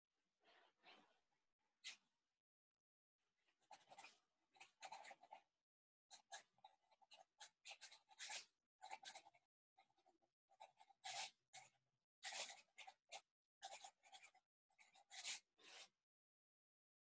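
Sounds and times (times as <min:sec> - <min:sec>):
pen scratching on paper: 0:03.6 - 0:05.5, 0:06.1 - 0:16.0.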